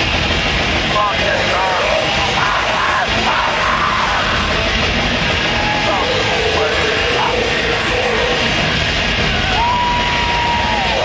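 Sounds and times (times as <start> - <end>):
death metal band playing live: 0.0 - 11.0
voices yelling: 5.2 - 8.6, 9.2 - 11.0.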